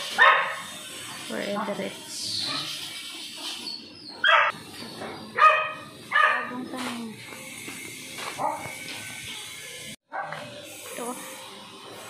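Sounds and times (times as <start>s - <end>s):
dog barking: 0.1s - 0.7s, 4.2s - 4.6s, 5.4s - 6.6s, 8.4s - 8.7s, 10.1s - 10.5s.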